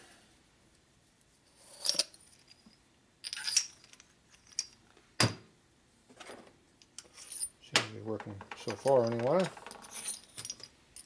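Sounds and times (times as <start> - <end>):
small metal parts clinking: 1.7 - 4.8, 8.2 - 11.0.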